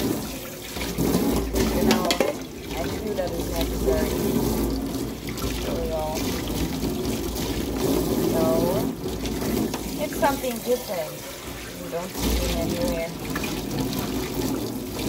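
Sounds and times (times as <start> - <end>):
tap water splashing on pan: 0.0 - 15.0.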